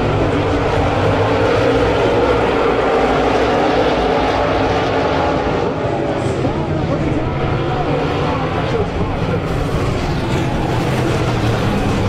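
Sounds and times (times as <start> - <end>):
race car engines roaring: 0.0 - 12.0.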